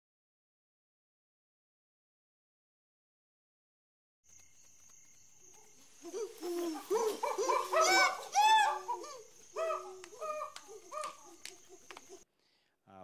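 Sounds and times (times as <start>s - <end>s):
chimpanzee pant-hoots: 6.0s - 12.2s.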